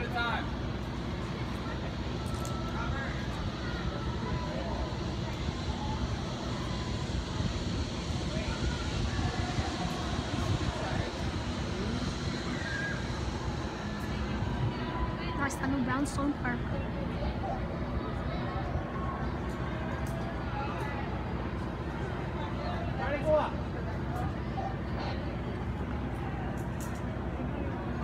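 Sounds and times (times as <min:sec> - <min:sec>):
faint distant voices: 0:00.0 - 0:28.0
low outdoor rumble: 0:00.0 - 0:28.0.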